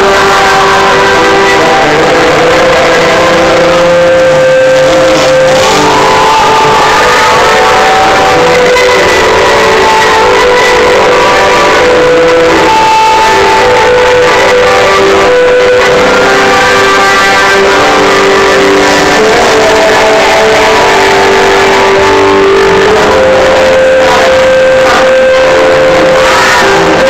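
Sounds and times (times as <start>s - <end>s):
live rock band playing: 0.0s - 27.0s.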